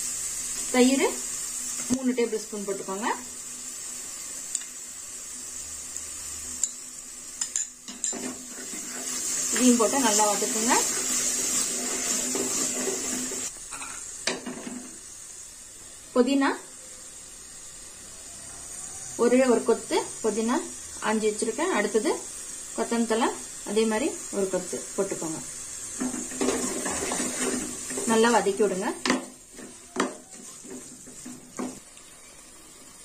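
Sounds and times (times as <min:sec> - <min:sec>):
sauce sizzling in pressure cooker: 0:00.0 - 0:33.0.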